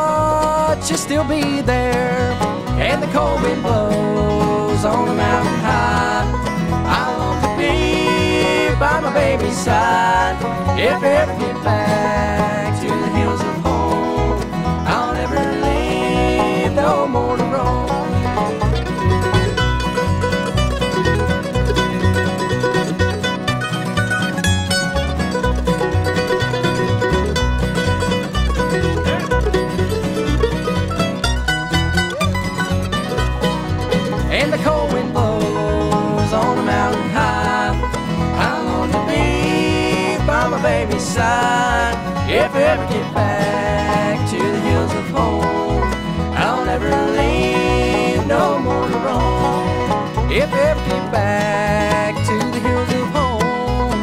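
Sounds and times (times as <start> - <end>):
banjo: 0.0 - 54.0
guitar: 0.0 - 54.0
mandolin: 0.0 - 54.0
upright bass: 0.0 - 54.0.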